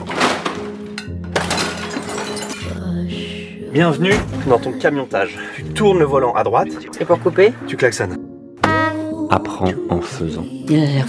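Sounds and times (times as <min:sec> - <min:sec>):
trailer music with bass line: 0:02.8 - 0:10.9.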